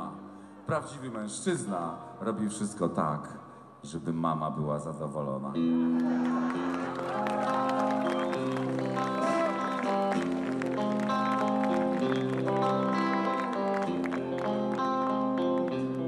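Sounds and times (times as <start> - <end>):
live rock band playing: 6.6 - 16.0.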